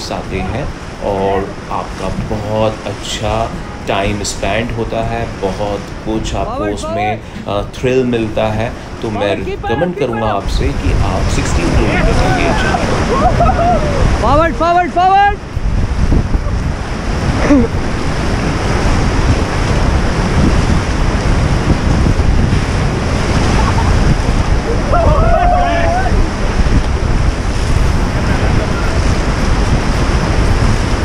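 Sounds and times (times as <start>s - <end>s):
rushing whitewater: 0.0s - 31.0s
wind buffeting microphone: 0.0s - 31.0s
person shouting: 24.7s - 26.3s.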